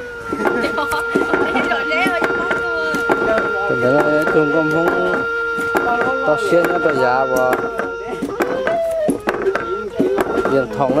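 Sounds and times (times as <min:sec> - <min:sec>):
steady high-pitched hum: 0:00.0 - 0:11.0
sharp knocks: 0:00.3 - 0:11.0.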